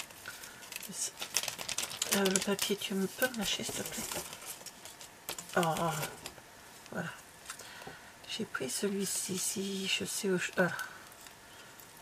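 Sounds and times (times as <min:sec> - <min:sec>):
paper wrapper rustling: 0:00.0 - 0:06.4.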